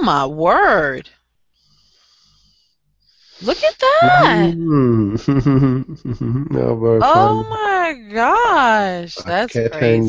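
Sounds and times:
faint breathy voice: 3.4s - 7.6s, 9.1s - 10.0s.

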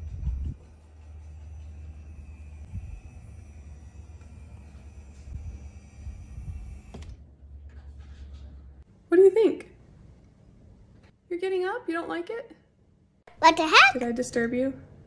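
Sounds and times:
electric motor humming: 1.2s - 7.2s.

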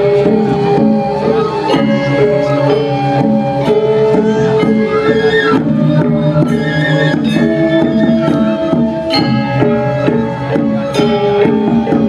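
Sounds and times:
drum strokes: 0.0s - 12.0s
metallophone melody: 0.0s - 12.0s.

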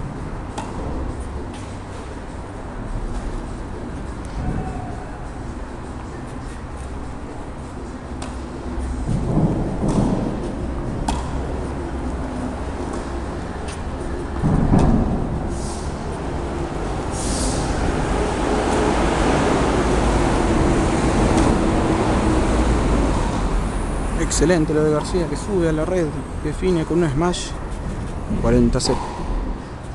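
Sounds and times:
tennis ball hit by rackets: 0.5s - 1.7s, 8.2s - 8.5s, 11.0s - 11.6s.

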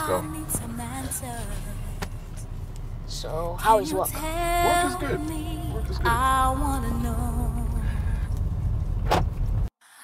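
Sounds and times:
car engine running: 0.0s - 9.7s.

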